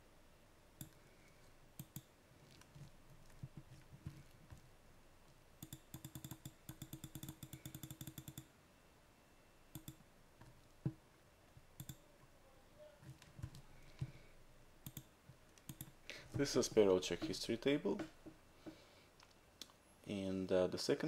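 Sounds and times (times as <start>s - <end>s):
computer mouse and keys clicking: 0.8s - 4.7s, 5.6s - 8.5s, 9.7s - 11.0s, 11.7s - 12.0s, 13.0s - 14.2s, 14.8s - 18.2s, 19.2s - 19.8s.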